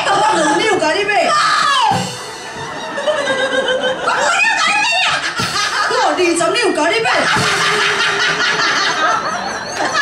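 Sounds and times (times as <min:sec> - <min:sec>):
opera music through sound system: 0:00.0 - 0:10.0.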